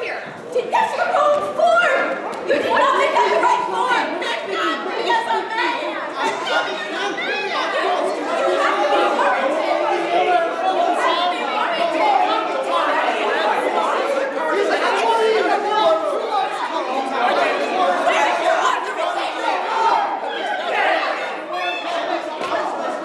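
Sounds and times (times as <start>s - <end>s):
overlapping chatter of voices: 0.0s - 23.0s.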